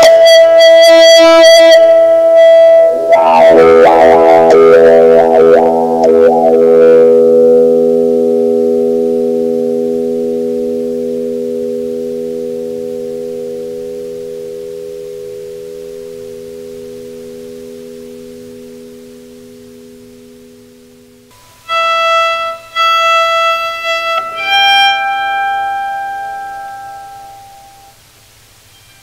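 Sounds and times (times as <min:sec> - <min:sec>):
bowed electric guitar: 0:00.0 - 0:28.0.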